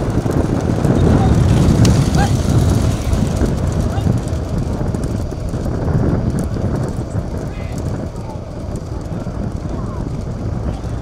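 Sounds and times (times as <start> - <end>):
vehicle rumbling at speed: 0.0 - 11.0
wind buffeting microphone: 0.0 - 11.0.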